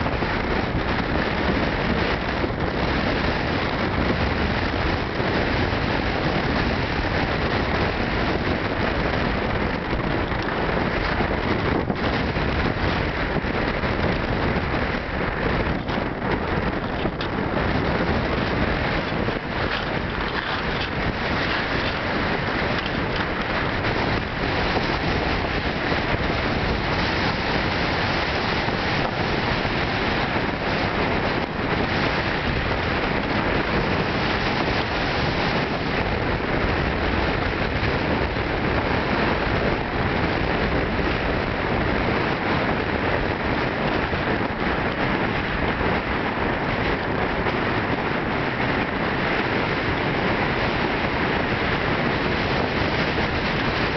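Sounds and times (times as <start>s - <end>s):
wind buffeting microphone: 0.0s - 53.9s.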